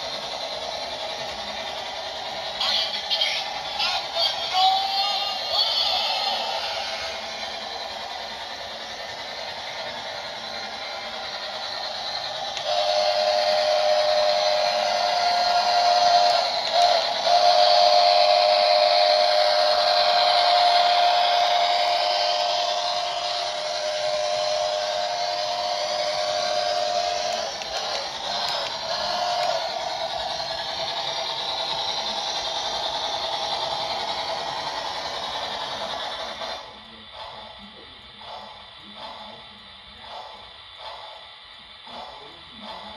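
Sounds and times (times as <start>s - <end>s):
model train rolling rumble: 0.0s - 42.9s
steam whistle: 12.6s - 27.4s.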